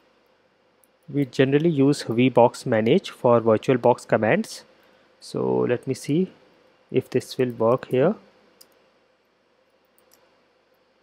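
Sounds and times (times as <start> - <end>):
faint keyboard typing clicks: 9.8 - 10.3.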